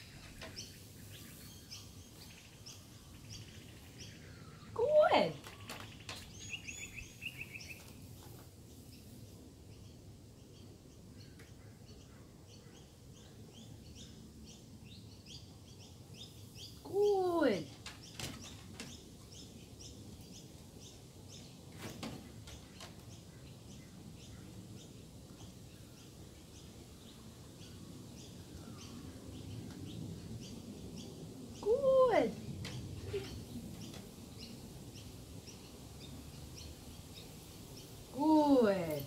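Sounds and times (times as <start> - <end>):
birds chirping: 0.0 - 39.0.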